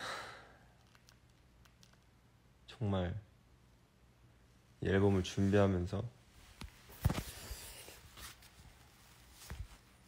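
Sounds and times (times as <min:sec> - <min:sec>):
faint fabric rustling: 0:04.8 - 0:10.0.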